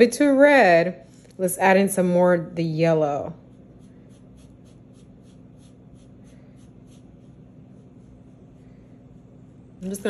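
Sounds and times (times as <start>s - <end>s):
low steady hum: 0.0s - 10.0s
paintbrush brushing a styrofoam plate: 2.9s - 10.0s.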